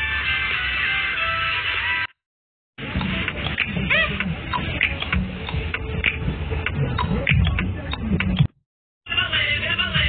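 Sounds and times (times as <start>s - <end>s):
open-air football pitch noise: 2.8s - 10.0s.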